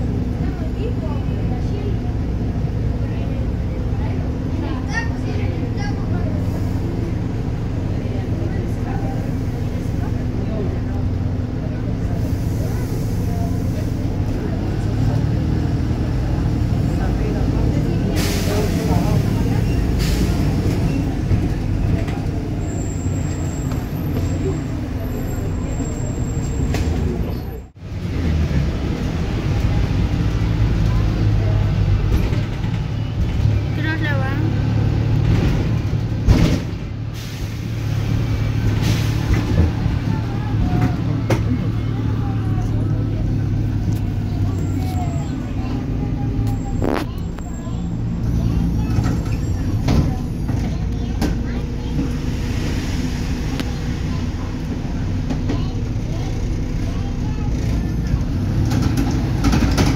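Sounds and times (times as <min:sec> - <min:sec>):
bus engine droning: 0:00.0 - 0:59.9
air brake hiss: 0:37.2 - 0:38.0.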